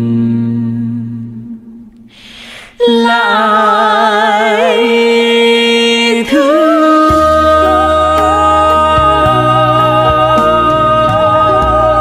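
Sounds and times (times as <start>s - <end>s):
held note of folk singing: 0.0s - 12.0s.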